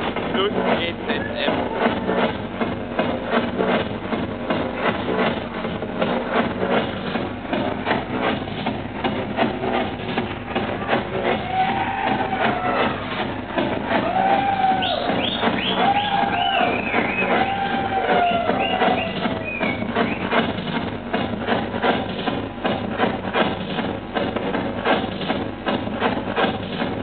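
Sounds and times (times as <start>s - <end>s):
techno kick drum: 0.0s - 27.0s.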